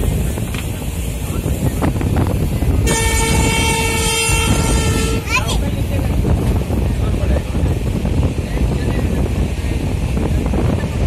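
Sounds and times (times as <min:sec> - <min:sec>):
train running rumble: 0:00.0 - 0:11.0
locomotive horn blast: 0:02.8 - 0:05.5.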